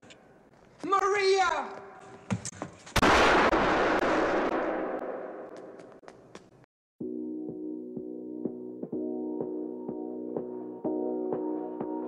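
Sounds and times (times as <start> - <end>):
loud gunshot: 3.0 - 5.9.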